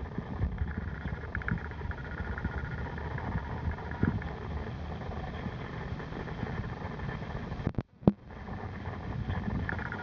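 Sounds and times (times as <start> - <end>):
underwater rumble: 0.0 - 10.0.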